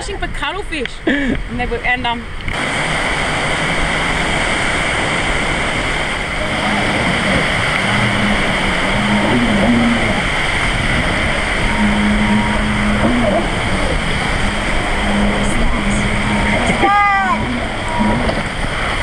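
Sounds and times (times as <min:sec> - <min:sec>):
jet ski engine running: 0:00.0 - 0:19.0
wind noise: 0:00.0 - 0:19.0
surf rushing: 0:01.3 - 0:19.0.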